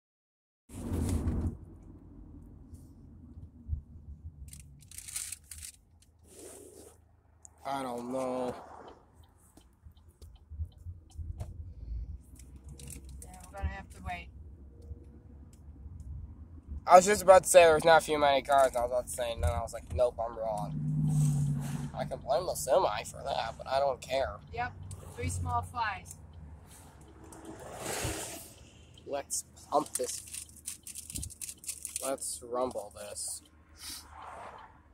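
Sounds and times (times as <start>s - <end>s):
car cabin road rumble: 0.7s - 34.9s.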